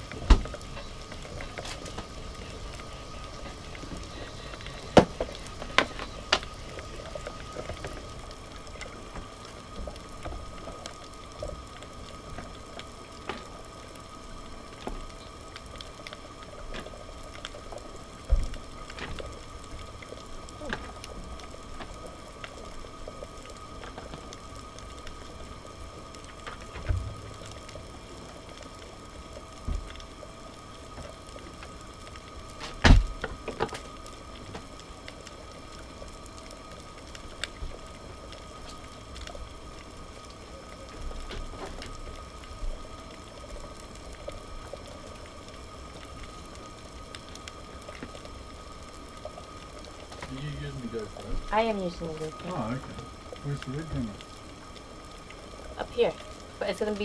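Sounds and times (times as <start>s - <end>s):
stove hum with thin tone: 0.0s - 29.4s, 30.2s - 57.0s.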